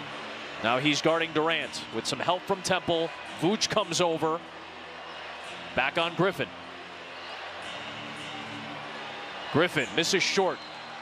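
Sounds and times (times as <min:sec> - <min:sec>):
basketball arena noise: 0:00.0 - 0:11.0
low background music: 0:00.0 - 0:11.0.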